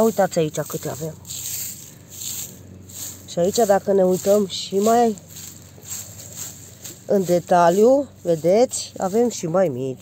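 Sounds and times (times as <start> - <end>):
dry straw rustling: 0.0 - 10.0.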